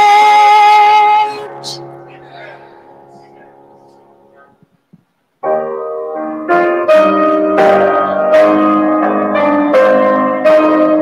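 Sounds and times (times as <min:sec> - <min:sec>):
grand piano chords ringing: 0:00.0 - 0:04.8, 0:05.4 - 0:11.0.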